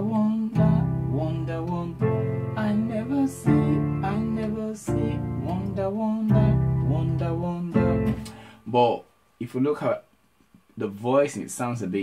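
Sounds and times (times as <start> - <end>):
electronic keyboard block chords: 0.0 - 8.4.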